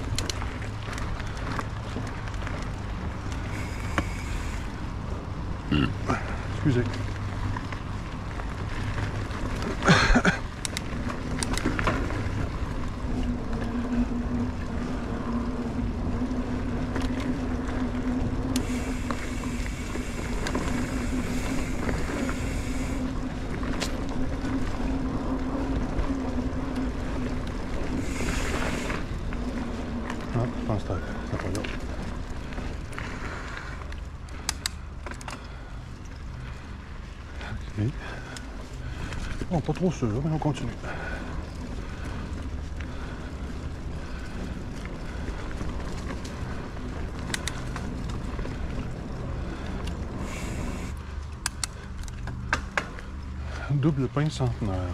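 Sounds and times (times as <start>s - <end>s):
bike rattling over ground: 0.0s - 54.9s
bike tyres on dirt trail: 0.0s - 54.9s.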